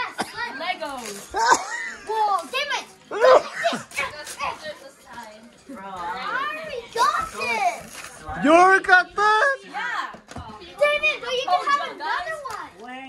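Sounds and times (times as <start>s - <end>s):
children talking and calling out: 0.0s - 13.0s.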